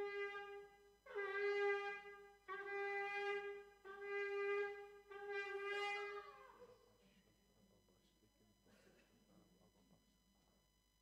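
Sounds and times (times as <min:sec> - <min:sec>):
ram's horn blast: 0:00.0 - 0:06.9.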